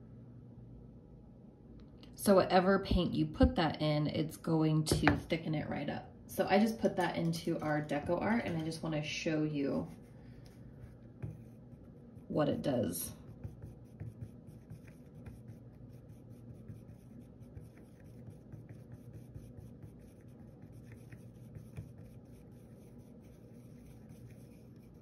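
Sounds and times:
tool scraping paint in palette: 7.4s - 8.8s, 9.7s - 25.0s.

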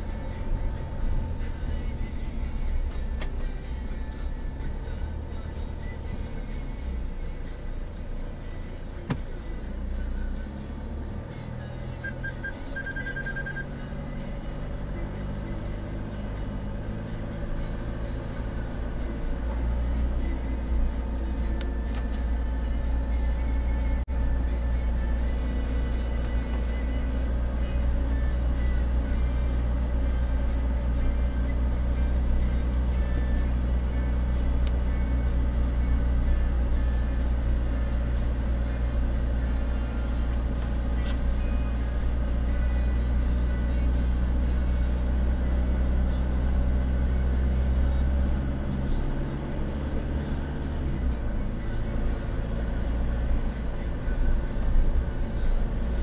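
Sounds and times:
car driving rumble from inside: 0.0s - 56.0s.

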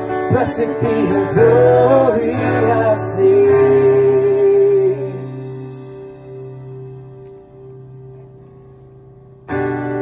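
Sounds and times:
acoustic guitar and keyboard chord: 0.0s - 10.0s.

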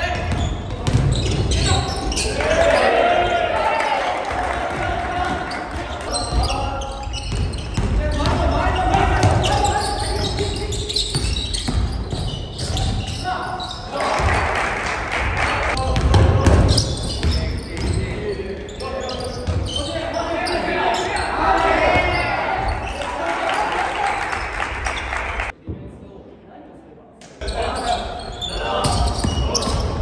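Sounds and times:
players' voices echoing: 0.0s - 30.0s
ball bouncing on wooden court: 0.1s - 2.2s, 5.3s - 13.2s, 15.8s - 18.1s.

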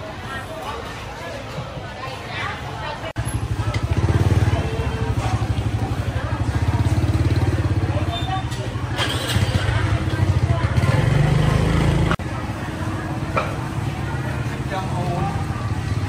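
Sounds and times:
chatter of voices: 0.0s - 16.0s
small motorcycle engine revving: 3.2s - 12.2s.

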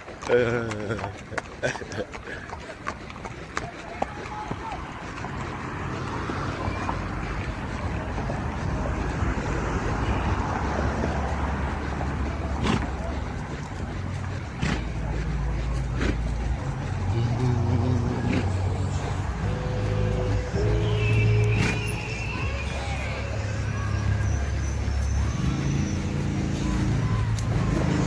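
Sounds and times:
cars driving past: 0.0s - 28.0s.

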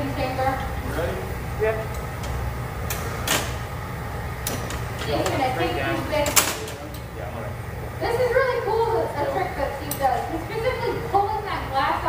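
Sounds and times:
furnace burners roaring: 0.0s - 12.0s.

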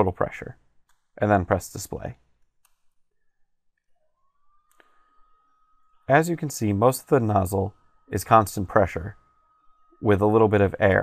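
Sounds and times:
faint steady high tone: 0.0s - 11.0s
computer mouse click: 4.7s - 5.0s.

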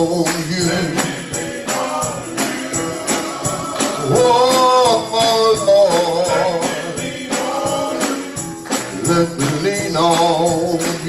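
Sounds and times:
handclaps: 0.0s - 11.0s
tambourine: 0.0s - 11.0s
vocal group singing in harmony: 0.0s - 11.0s.

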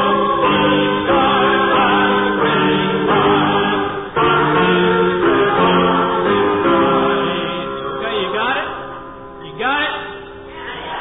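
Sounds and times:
choir singing a hymn: 0.0s - 7.9s, 10.5s - 11.0s.

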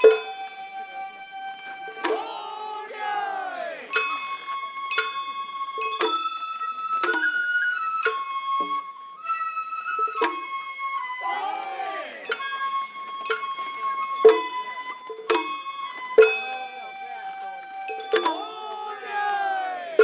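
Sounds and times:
bamboo flute long notes: 0.0s - 20.0s
sharp ringing percussion strikes: 14.0s - 14.6s, 17.9s - 18.6s.

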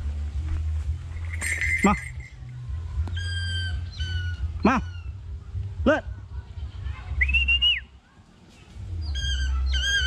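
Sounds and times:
hawk-eagle shrill piping call: 3.1s - 5.1s, 9.1s - 10.0s.

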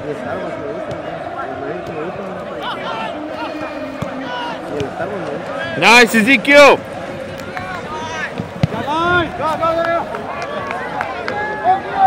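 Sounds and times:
people shouting: 2.4s - 12.0s.

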